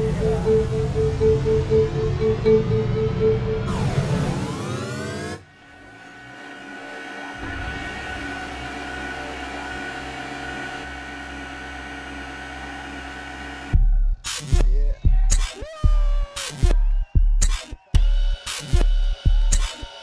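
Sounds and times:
sweep of gliding electronic tones: 0:00.0 - 0:05.4
droning held tones: 0:00.0 - 0:14.1.

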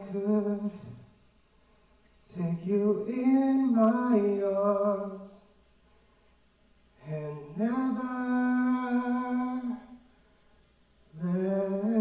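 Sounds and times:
person singing a long note: 0:11.2 - 0:12.0.

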